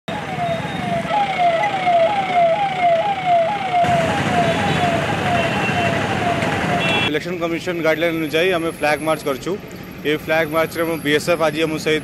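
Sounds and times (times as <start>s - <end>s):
police siren wailing: 0.1s - 7.1s
street bustle: 0.1s - 12.0s.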